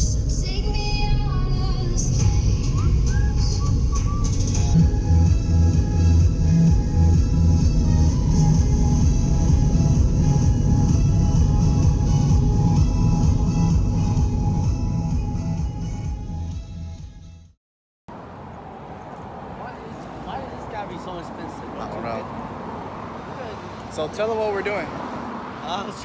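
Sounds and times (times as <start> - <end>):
upbeat instrumental music: 2.2 - 17.6.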